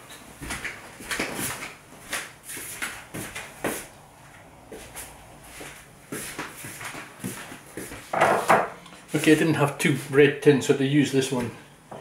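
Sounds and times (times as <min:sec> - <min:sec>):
kitchen knocks and clunks: 0:08.1 - 0:08.8.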